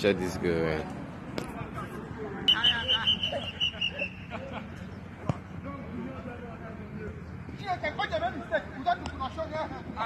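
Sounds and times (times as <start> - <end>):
voices on a football pitch: 0.0 - 10.0.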